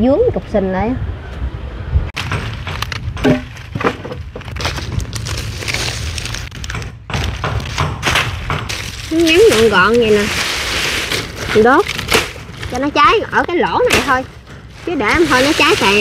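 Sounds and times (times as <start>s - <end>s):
dry palm fronds snapping and rustling: 2.2s - 16.0s.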